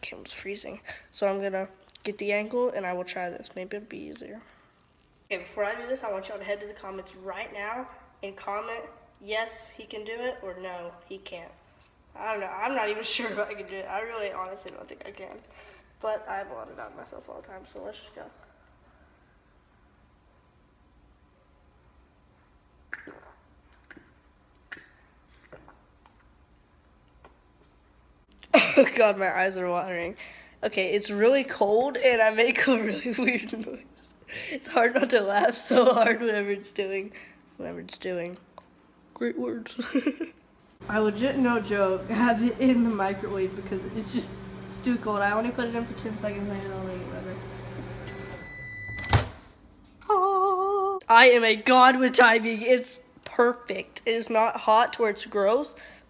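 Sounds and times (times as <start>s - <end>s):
person gulping a drink: 22.8s - 26.4s
microwave oven humming: 39.8s - 51.0s
high steady tone: 48.0s - 49.2s.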